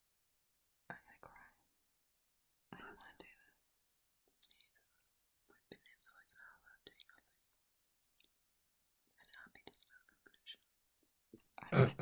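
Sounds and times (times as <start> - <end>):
faint whispering: 0.9 - 1.7, 2.7 - 3.8, 4.4 - 7.6, 9.1 - 10.7.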